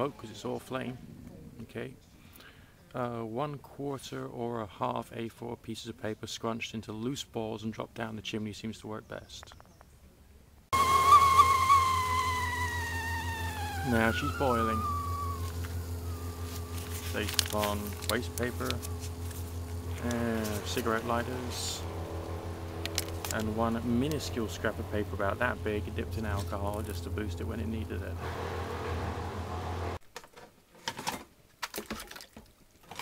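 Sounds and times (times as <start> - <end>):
kettle steam whistling: 10.7 - 21.9
steady low hum: 10.8 - 30.0
low rumble and hiss: 11.8 - 30.0
water splashing in a bowl: 31.7 - 33.0.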